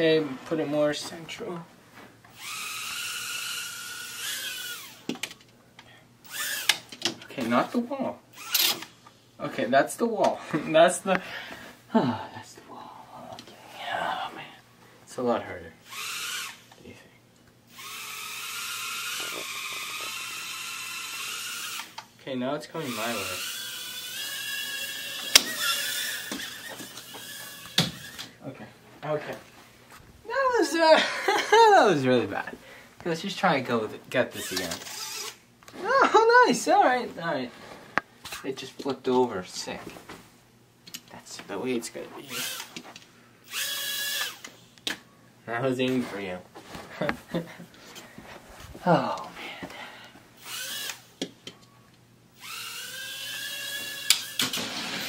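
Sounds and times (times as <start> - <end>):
small drone motors whining: 2.3 - 5.0, 17.7 - 22.0, 22.9 - 28.3, 43.4 - 44.6, 50.4 - 51.1, 52.4 - 55.0.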